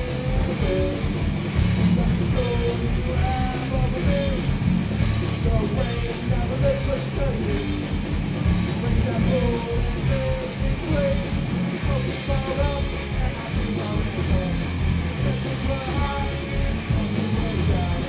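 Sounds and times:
person singing: 0:00.0 - 0:01.2, 0:01.8 - 0:04.6, 0:08.7 - 0:18.0
drums: 0:00.0 - 0:18.0
electric guitars: 0:00.0 - 0:18.0.

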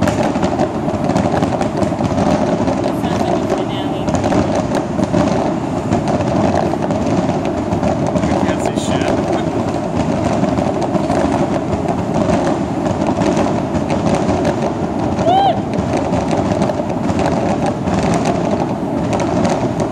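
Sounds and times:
fireworks crackling: 0:00.0 - 0:19.9.

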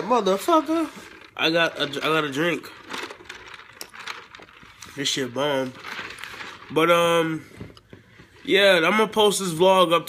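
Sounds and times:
faint clicks and handling noises: 0:01.0 - 0:06.7.

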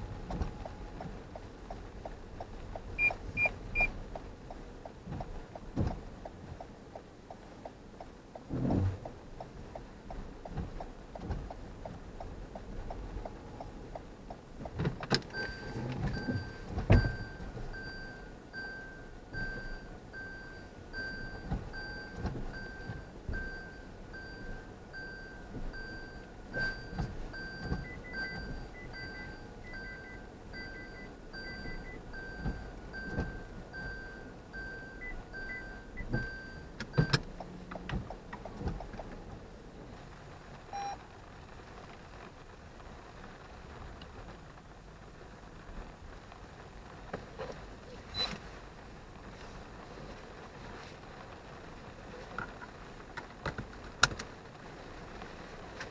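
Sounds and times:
fast high parking sensor beep: 0:03.0 - 0:04.0, 0:15.3 - 0:37.2, 0:40.7 - 0:41.0
reverse warning beeper: 0:03.0 - 0:04.0, 0:15.4 - 0:37.2, 0:40.7 - 0:41.0.

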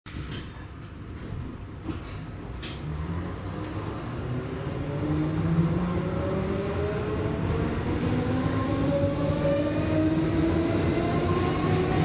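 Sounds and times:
train rumble and hum: 0:00.1 - 0:12.0.

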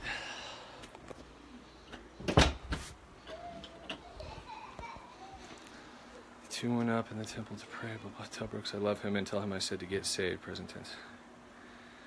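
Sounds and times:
faint children's voices: 0:03.2 - 0:06.0.

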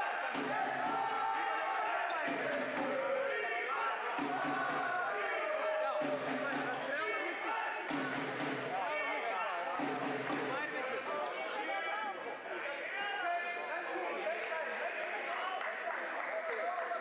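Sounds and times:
indoor arena noise: 0:00.0 - 0:17.0.

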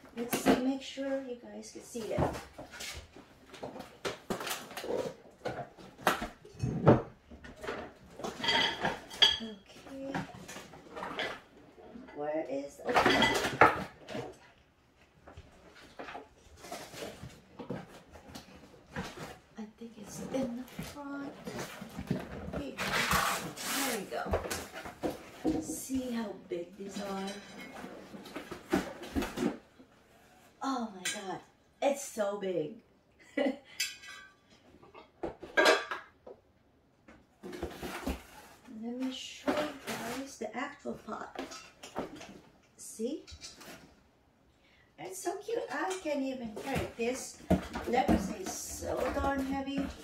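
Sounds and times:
cardboard and paper rustling: 0:37.4 - 0:41.4, 0:46.5 - 0:50.0.

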